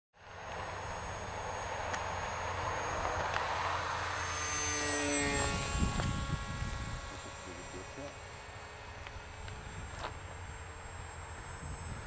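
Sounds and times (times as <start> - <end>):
model glider motor whine: 0.2 - 12.0.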